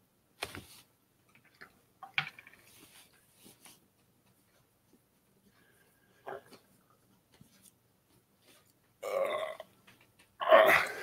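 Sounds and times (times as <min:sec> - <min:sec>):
man's throaty vocal noises: 0:09.0 - 0:09.7, 0:10.4 - 0:11.0.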